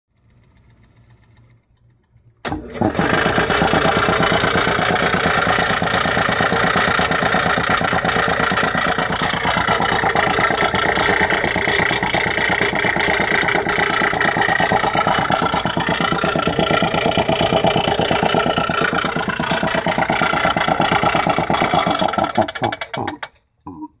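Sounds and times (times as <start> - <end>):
piston air compressor chugging: 0.2 - 23.3.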